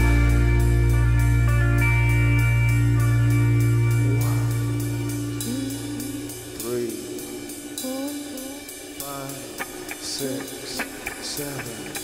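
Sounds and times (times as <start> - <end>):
sustained low chord: 0.0 - 7.8
person singing bending phrases: 3.9 - 11.9
light cymbal ticks: 4.2 - 12.0.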